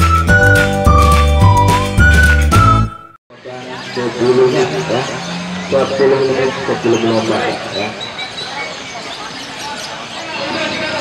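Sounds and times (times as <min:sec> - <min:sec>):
intro music: 0:00.0 - 0:03.2
crowd of men talking: 0:03.3 - 0:11.0.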